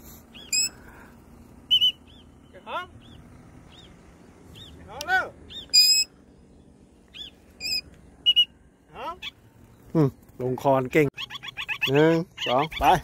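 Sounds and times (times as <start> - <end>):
faint small bird chirps: 0.1 - 4.8, 5.5 - 8.6
parrot squawks and whistles: 0.4 - 0.7, 5.5 - 6.1, 7.6 - 8.5.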